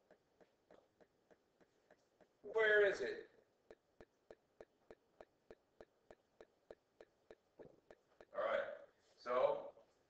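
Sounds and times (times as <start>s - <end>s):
faint regular ticking: 0.0s - 9.0s.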